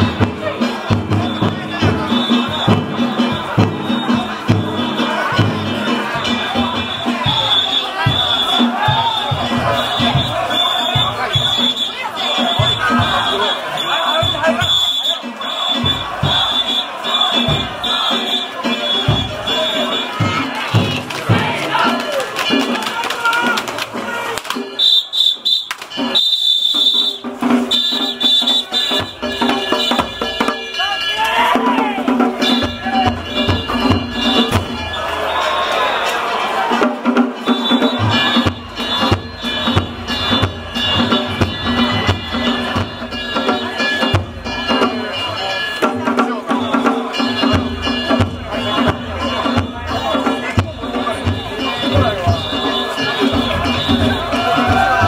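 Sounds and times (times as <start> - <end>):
crowd shouting: 0.0 - 55.0
festival drums and gongs: 0.0 - 55.0.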